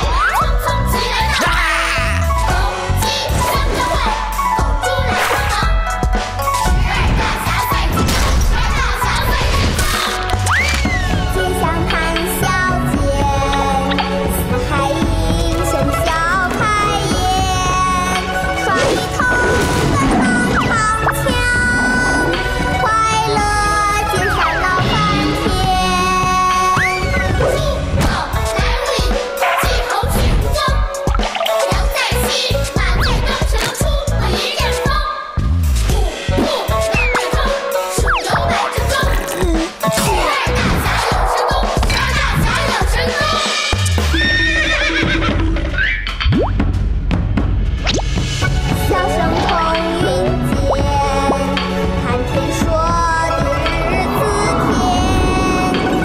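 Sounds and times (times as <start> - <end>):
cartoon theme music: 0.0 - 46.8, 47.7 - 56.0
horse whinnying: 44.1 - 46.1.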